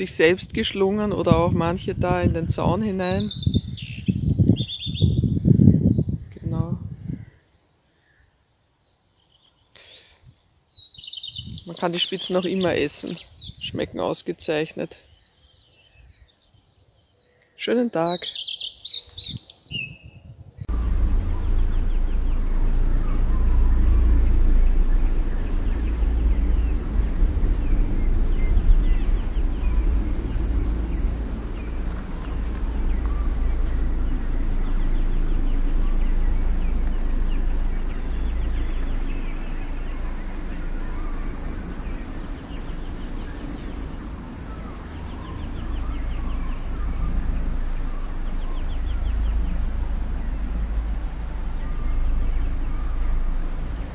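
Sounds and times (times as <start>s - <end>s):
birds chirping faintly: 0.0s - 53.9s
steady low rumble: 20.6s - 53.9s.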